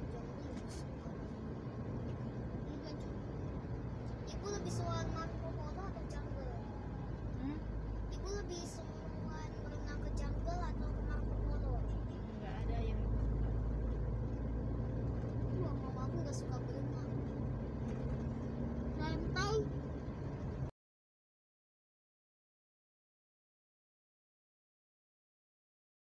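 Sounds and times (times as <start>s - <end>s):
car engine and tyres rumbling: 0.0s - 20.7s.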